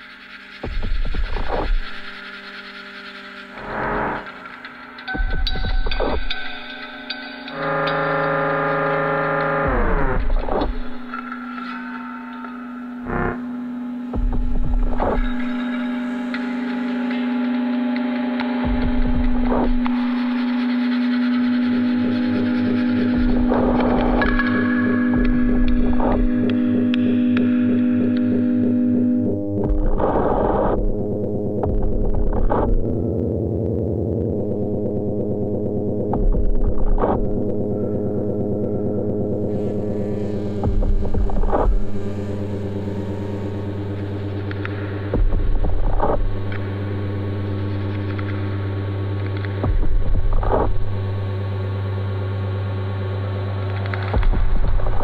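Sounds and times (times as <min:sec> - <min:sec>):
experimental drone music: 0:00.0 - 0:55.0
low held drone: 0:00.0 - 0:55.0.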